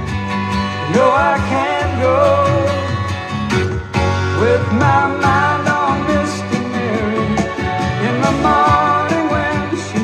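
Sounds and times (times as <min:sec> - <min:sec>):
country-pop song with guitar: 0:00.0 - 0:10.0.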